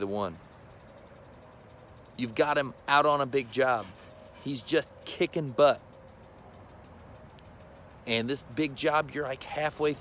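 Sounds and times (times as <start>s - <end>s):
tiny tick: 5.8s - 8.5s.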